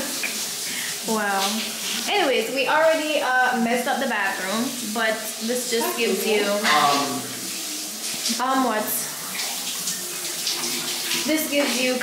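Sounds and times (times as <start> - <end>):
water running from tap: 0.0 - 12.0.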